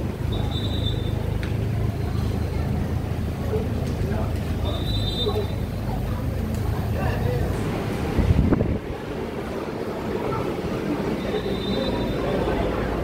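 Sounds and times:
steady low rumble: 0:05.8 - 0:11.1.

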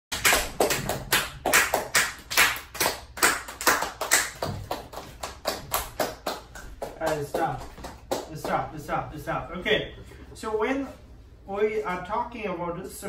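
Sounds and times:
rapid sharp claps or knocks: 0:00.1 - 0:08.8.

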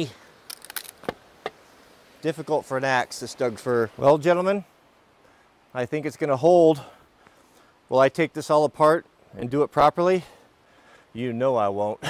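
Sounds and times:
wood fibres cracking: 0:00.4 - 0:01.6.

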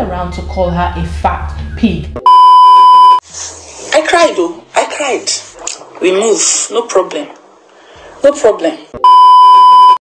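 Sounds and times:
electronic bleep tone: 0:01.6 - 0:03.2, 0:09.0 - 0:10.0.

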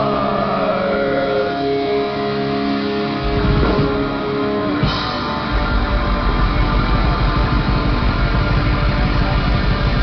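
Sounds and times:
distorted electric guitars: 0:00.0 - 0:10.0
rapid bass-heavy drumming: 0:02.2 - 0:10.0.

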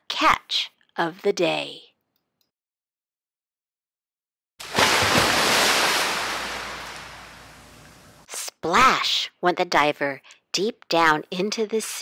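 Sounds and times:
loud splash into water: 0:04.6 - 0:07.6
churning water: 0:04.6 - 0:08.0.

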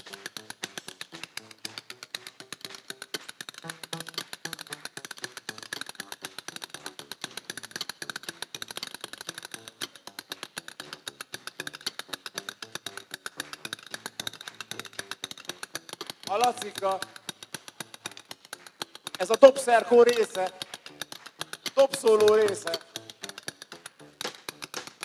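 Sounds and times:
drumsticks tapping a microphone: 0:00.0 - 0:25.0.

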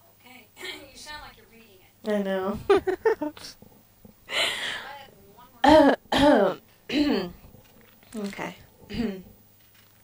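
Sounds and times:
person clearing throat: 0:05.6 - 0:07.4, 0:08.9 - 0:09.3.

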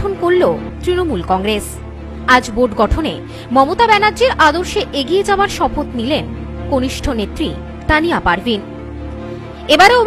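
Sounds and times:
person narrating news: 0:00.0 - 0:08.7, 0:09.7 - 0:10.0
background music with held tones: 0:00.0 - 0:10.0.

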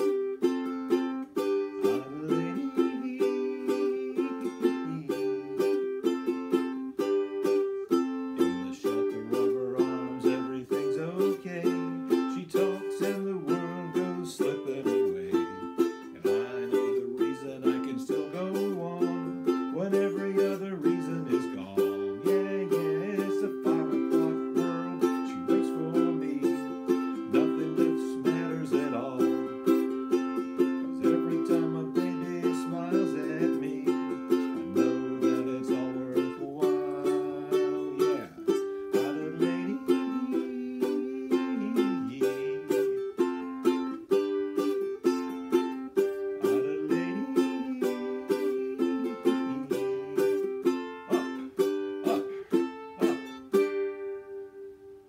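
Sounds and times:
man singing: 0:00.0 - 0:54.0
ukulele strumming: 0:00.0 - 0:55.0.

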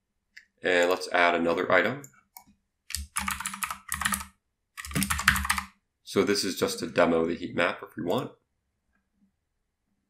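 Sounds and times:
typing on computer keyboard: 0:02.9 - 0:05.7.

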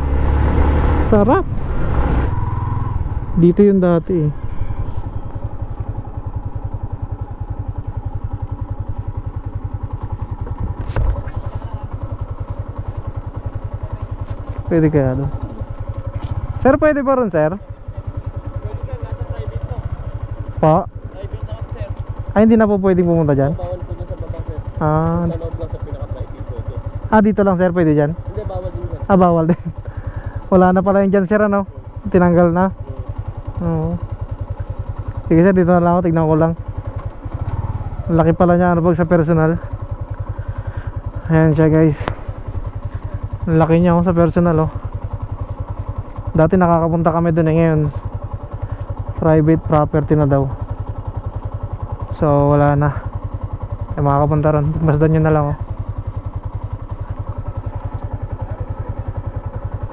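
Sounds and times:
motorcycle engine at low revs: 0:00.0 - 0:59.9.

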